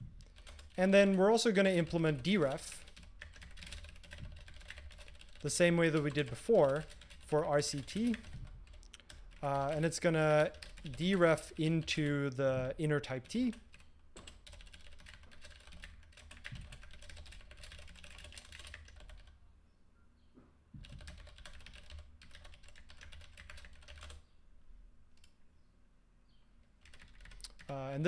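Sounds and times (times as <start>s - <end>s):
typing on computer keyboard: 0.2s - 0.8s, 2.3s - 9.7s, 10.4s - 11.3s, 13.2s - 19.4s, 20.8s - 24.2s, 26.8s - 27.7s.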